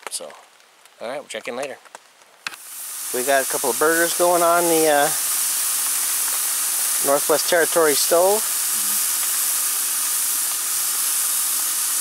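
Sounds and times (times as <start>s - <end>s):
patties sizzling in skillet: 2.5s - 12.0s.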